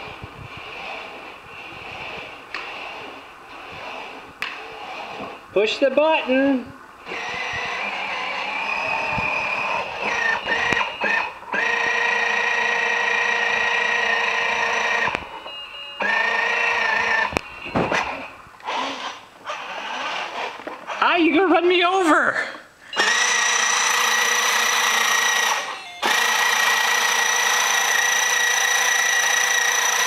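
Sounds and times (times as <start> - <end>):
toy electronic tones: 7.6 - 18.4, 22.9 - 30.0.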